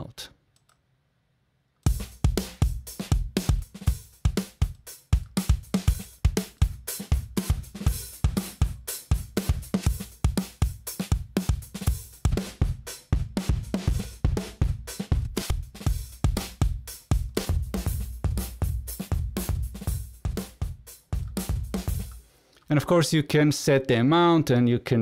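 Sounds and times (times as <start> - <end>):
rock drum kit groove: 1.8 - 22.3.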